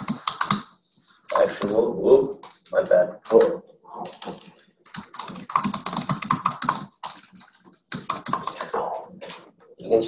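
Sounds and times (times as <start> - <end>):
typing on computer keyboard: 0.0 - 1.8, 3.2 - 8.8.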